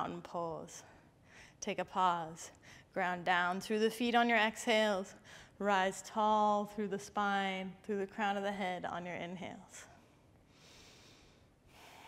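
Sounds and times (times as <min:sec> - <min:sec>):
woman breathing softly: 0:00.9 - 0:01.6, 0:10.0 - 0:12.0.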